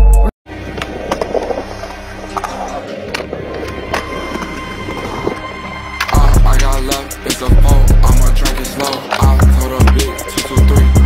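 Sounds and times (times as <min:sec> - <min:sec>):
skateboard wheels rolling on concrete: 0:00.5 - 0:11.0
skateboard clacking: 0:00.6 - 0:05.4, 0:06.0 - 0:11.0
hip-hop track with heavy bass: 0:05.8 - 0:11.0.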